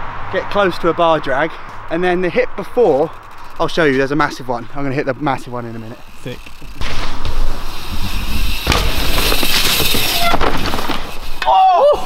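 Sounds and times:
bike tyres skidding through mud: 3.1 - 12.0
sharp crack: 8.5 - 11.5.

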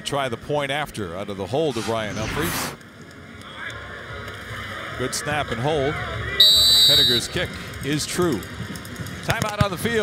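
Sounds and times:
low murmur of stadium crowd: 2.8 - 10.0.

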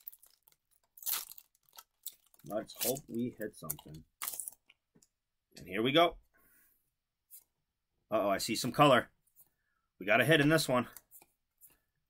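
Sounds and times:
foil wrapper crinkling: 0.0 - 4.6.

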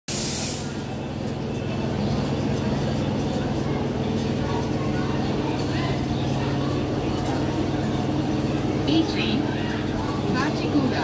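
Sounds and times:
air hiss: 0.1 - 0.8
train engine humming: 0.1 - 11.0
voices: 0.6 - 11.0.

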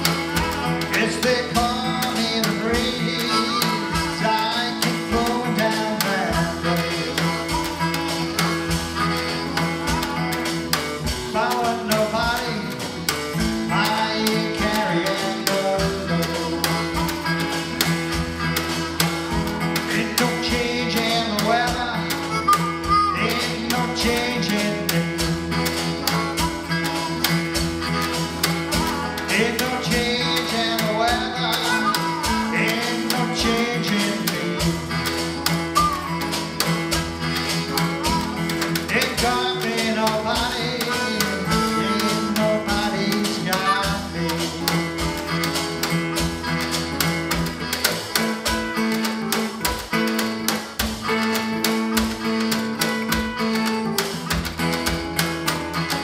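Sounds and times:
harmonica: 0.0 - 56.0
percussion beat with cymbal: 0.0 - 56.0
strummed acoustic guitar: 0.0 - 56.0.

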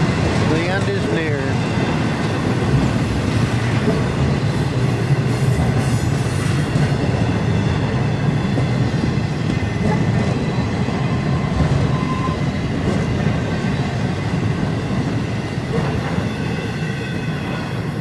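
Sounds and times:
rail cars clattering: 0.0 - 18.0
train wheels rumbling on rail: 0.0 - 18.0.

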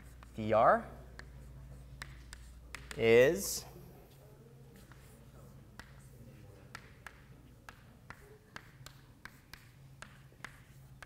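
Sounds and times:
chalk clicking on blackboard: 0.0 - 3.5, 4.8 - 11.0
faint low room hum: 0.0 - 11.0.

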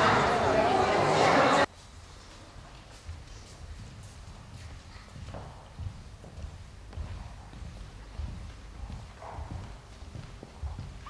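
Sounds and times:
footsteps marching on hard floor: 1.8 - 11.0.

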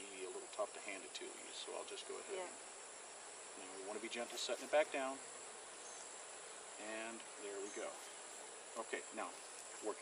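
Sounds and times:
honeybees buzzing: 0.0 - 10.0
insects trilling: 0.0 - 10.0.

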